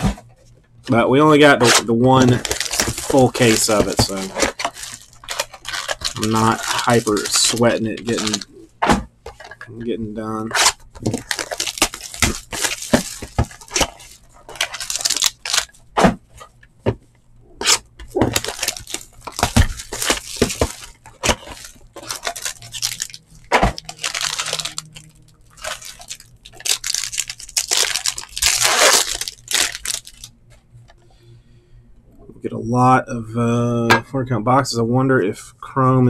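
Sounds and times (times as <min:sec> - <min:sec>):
cardboard box being torn open: 0:01.7 - 0:08.4, 0:17.6 - 0:25.0.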